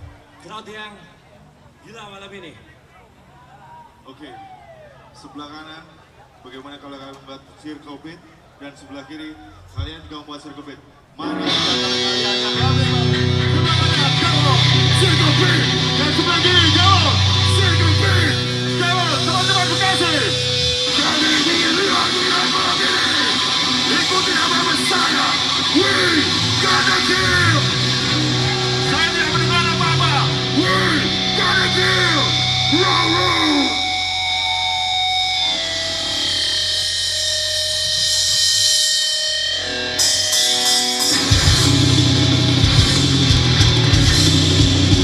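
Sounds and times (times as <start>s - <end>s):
crowd shouting: 2.8s - 6.5s, 7.5s - 9.9s, 10.8s - 36.6s
distorted guitar and bass chord: 11.2s - 45.0s
heavy metal band playing: 11.2s - 45.0s
ringing guitar noise: 11.2s - 45.0s.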